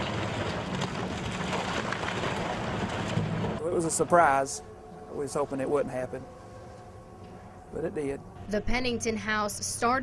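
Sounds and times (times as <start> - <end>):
rubble falling and rattling: 0.0 - 3.6.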